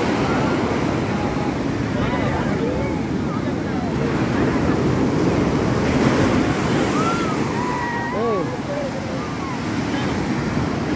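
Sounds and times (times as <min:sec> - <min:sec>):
sea surf breaking on shore: 0:00.0 - 0:10.9.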